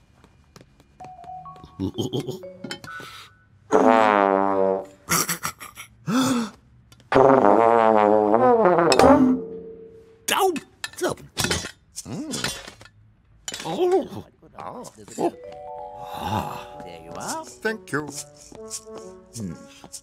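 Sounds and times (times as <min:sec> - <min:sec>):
cartoon music: 0:01.0 - 0:03.3, 0:15.2 - 0:19.9
wavering comic vocal sounds: 0:12.0 - 0:12.6, 0:16.0 - 0:17.4.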